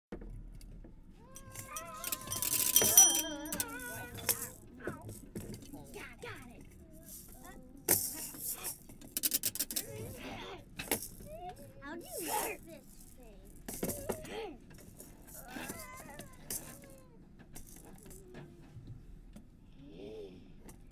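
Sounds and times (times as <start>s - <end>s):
clatters and knocks: 0.1s - 9.9s
wavering gliding cry: 1.5s - 4.2s.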